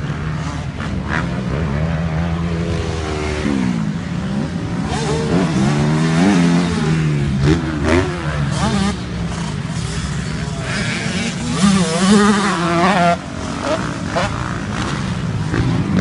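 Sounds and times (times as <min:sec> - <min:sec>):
motocross bike engines revving: 0:00.0 - 0:16.0.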